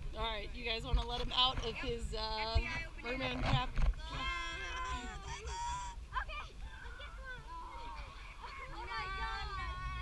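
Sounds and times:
children crying out high-pitched: 4.1 - 10.0.

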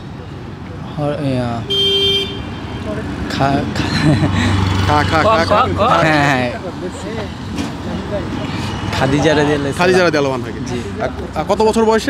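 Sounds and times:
street noise with faint traffic: 0.0 - 12.0
man laughing: 3.7 - 6.0.

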